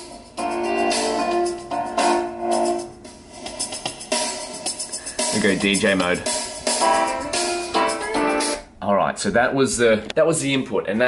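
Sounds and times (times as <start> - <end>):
jazz piano chords through speakers: 0.0 - 8.7.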